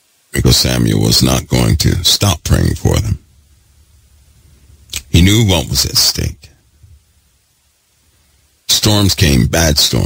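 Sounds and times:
faint steady hiss: 0.0 - 10.0
man speaking: 0.3 - 3.3, 4.9 - 6.6, 8.7 - 10.0
low hum: 0.4 - 8.6.

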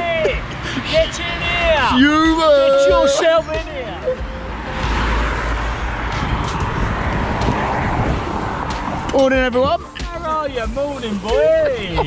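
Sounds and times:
road traffic rushing: 0.0 - 12.0
low rumble: 4.3 - 9.6.

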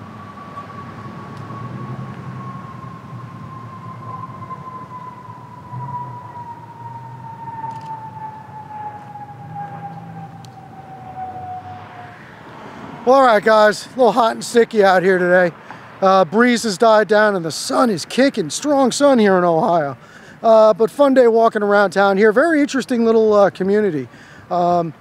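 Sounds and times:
low outdoor background rumble: 0.0 - 15.4
whining tone sliding downward: 0.0 - 15.4.

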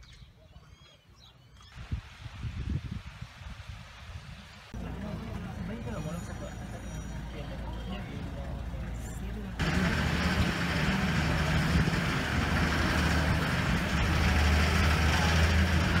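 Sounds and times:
vehicle engine and road rumble: 4.4 - 16.0.

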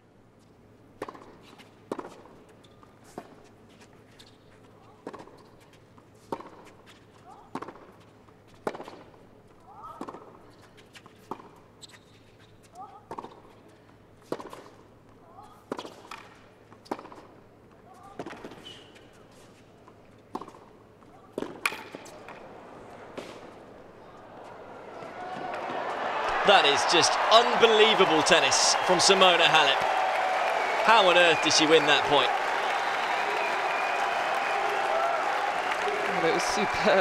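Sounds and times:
racquets striking tennis ball: 20.2 - 33.2.

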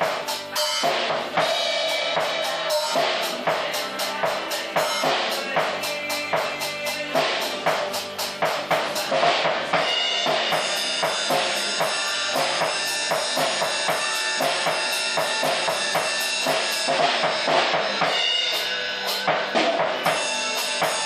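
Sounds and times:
acoustic drum kit playing: 0.0 - 21.0
recorded rock song: 0.0 - 21.0.

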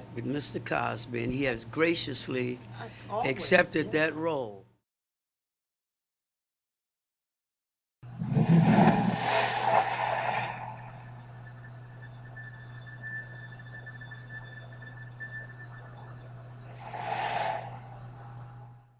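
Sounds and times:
loud whoosh with low rumble: 8.1 - 11.2, 16.6 - 18.9
low synth drone: 8.1 - 18.9.

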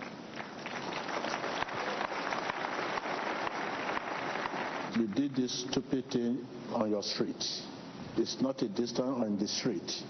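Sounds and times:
crowd applauding: 0.0 - 4.9.

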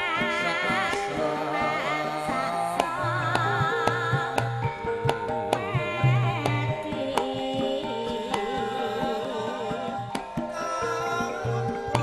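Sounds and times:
drum strokes: 0.0 - 12.0
metallophone tones: 0.0 - 12.0
woman singing: 0.0 - 12.0.

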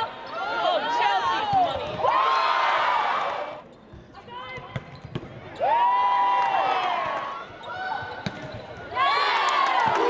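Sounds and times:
shoes squeaking on hardwood court: 3.7 - 5.6, 7.4 - 8.9.

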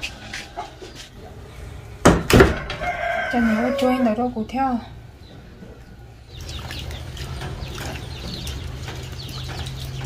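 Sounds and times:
birds chirping: 2.8 - 10.0.

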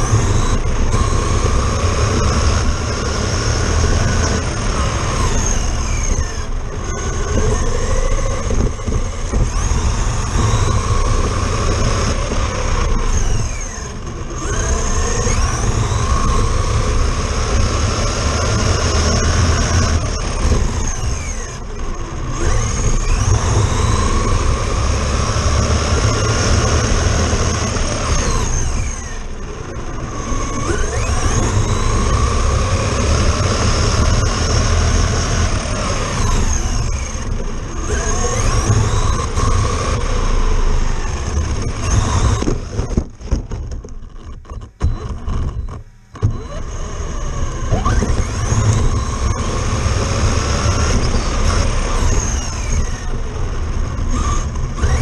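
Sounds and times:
electric motor and gears whining: 0.0 - 55.0
tyres rumbling on rough asphalt: 0.0 - 55.0.

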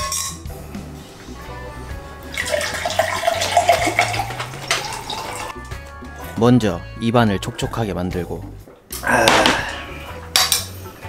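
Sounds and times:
background music: 0.0 - 11.0
water pouring into a glass: 2.2 - 5.6.

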